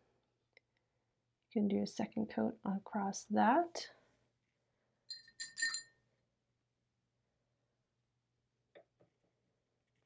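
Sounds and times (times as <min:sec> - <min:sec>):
paintbrush clinking against glass: 0:05.1 - 0:06.0.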